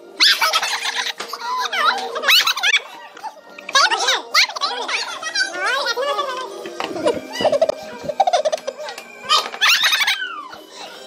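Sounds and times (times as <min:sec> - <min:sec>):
people shrieking and squealing: 0:00.1 - 0:11.0.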